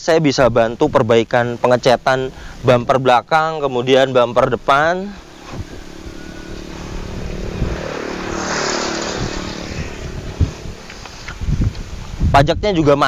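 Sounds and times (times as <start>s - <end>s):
vehicle driving past: 4.3s - 12.1s.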